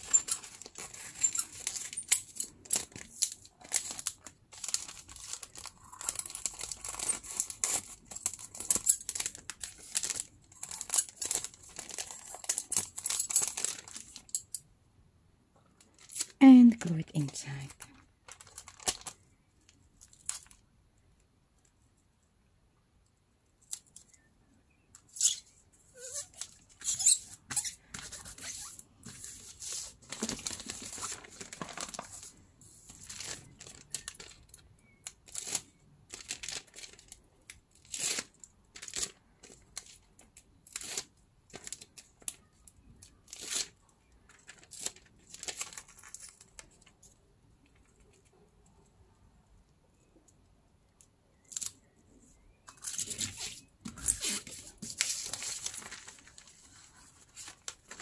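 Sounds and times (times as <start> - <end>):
plastic sheet crinkling: 0.0 - 14.4, 15.8 - 20.6, 25.9 - 37.2, 37.8 - 42.5, 43.3 - 47.0, 52.7 - 58.0.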